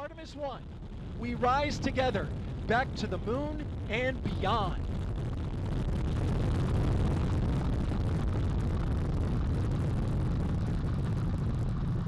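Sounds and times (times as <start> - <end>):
rocket engines rumbling and crackling: 0.0 - 12.0.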